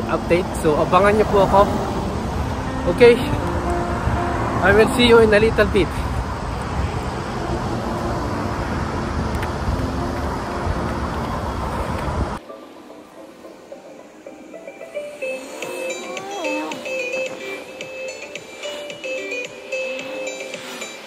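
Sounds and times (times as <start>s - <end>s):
faint background music: 0.0s - 6.2s, 7.7s - 21.0s
roadside traffic: 0.0s - 12.4s, 13.0s - 21.0s.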